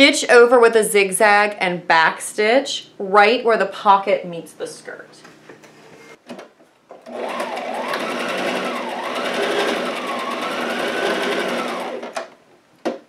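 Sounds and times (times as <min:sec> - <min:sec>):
sewing machine stitching: 0:07.0 - 0:12.2.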